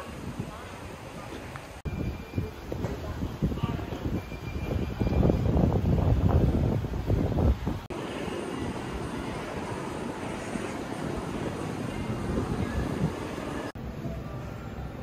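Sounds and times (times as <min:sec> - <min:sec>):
wind rumble: 0:00.0 - 0:14.2.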